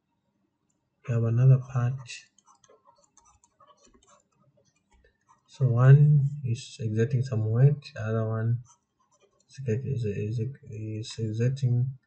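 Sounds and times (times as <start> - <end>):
stylus ticking on drawing tablet: 2.2 - 5.5.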